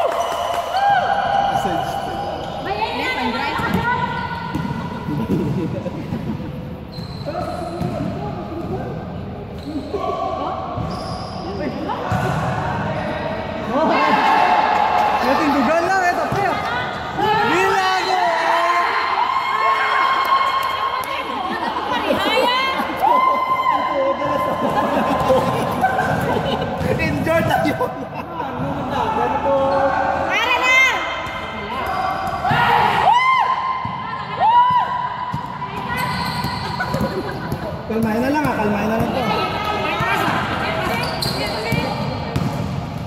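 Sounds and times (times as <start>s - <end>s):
general noise of hall: 0.0s - 43.0s
basketball bouncing on court: 3.5s - 5.7s, 34.7s - 39.3s, 39.9s - 43.0s
people yelling: 29.0s - 36.4s.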